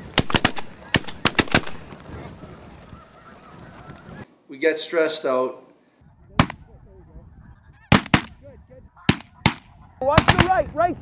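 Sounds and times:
shotgun blasts: 0:00.0 - 0:01.8, 0:06.4 - 0:06.6, 0:07.9 - 0:08.4, 0:09.1 - 0:10.6
geese calling: 0:00.0 - 0:10.5.

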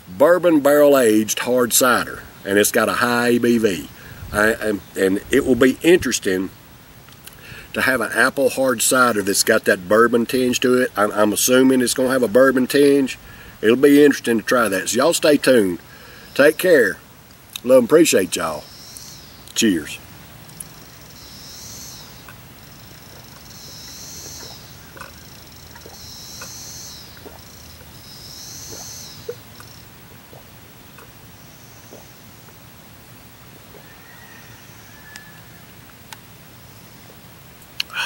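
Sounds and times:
faint chirps: 0:18.5 - 0:32.6.

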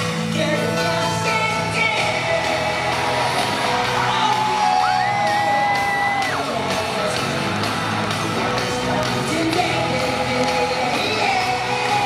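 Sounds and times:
live pop concert music with singing: 0:00.0 - 0:12.0.

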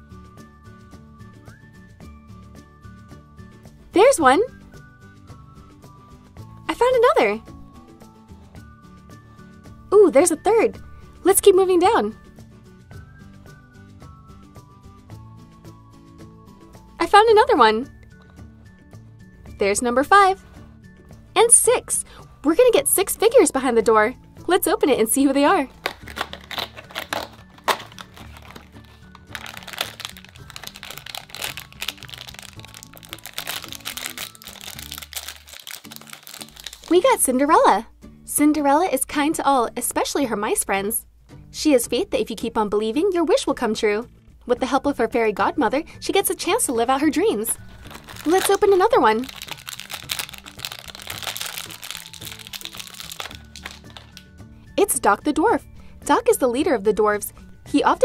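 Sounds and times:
soft background music: 0:00.0 - 0:58.0
foil wrappers crinkling: 0:25.8 - 0:37.2, 0:47.6 - 0:54.3.

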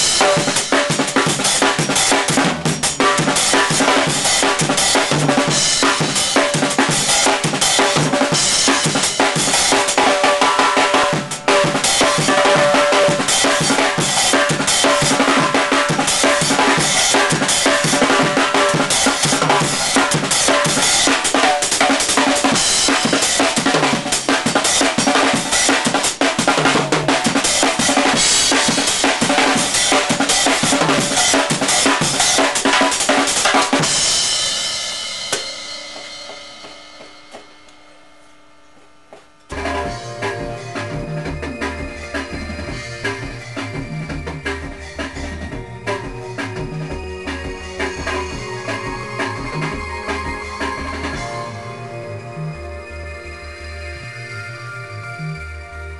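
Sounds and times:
acoustic drum kit playing: 0:00.0 - 0:37.9, 0:39.1 - 0:52.9.

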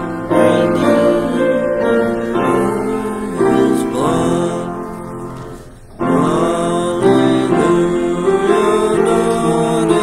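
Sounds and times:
hymn singing: 0:00.0 - 0:10.0
keyboard accompaniment: 0:00.0 - 0:10.0.

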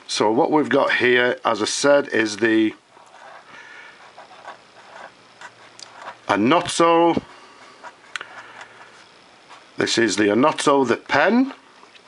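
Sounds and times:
fountain pen scratching on paper: 0:02.9 - 0:06.7.

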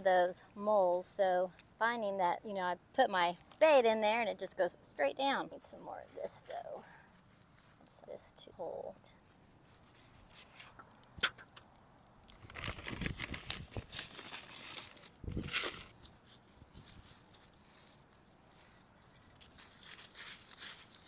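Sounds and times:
hands rustling soil and mulch: 0:05.5 - 0:08.3, 0:09.2 - 0:11.1, 0:12.2 - 0:21.0.

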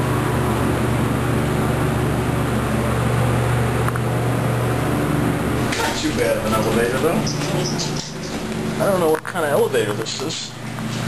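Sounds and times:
elevator hum: 0:00.0 - 0:11.0
elevator doors opening: 0:05.5 - 0:09.0.

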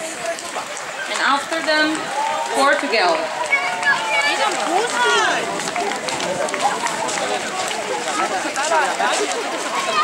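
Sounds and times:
people talking and calling: 0:00.0 - 0:10.0.

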